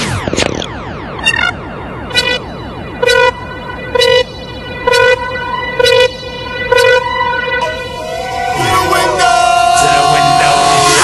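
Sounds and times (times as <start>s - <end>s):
falling synth sweeps: 0.0s - 11.0s
steady held tone: 0.0s - 11.0s
horn-like synth stab: 4.8s - 11.0s.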